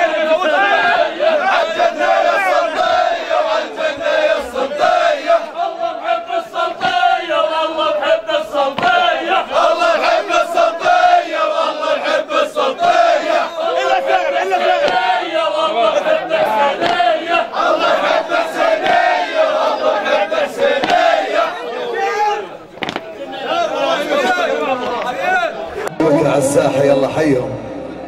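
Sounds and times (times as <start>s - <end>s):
crowd of men chanting: 0.0s - 28.0s.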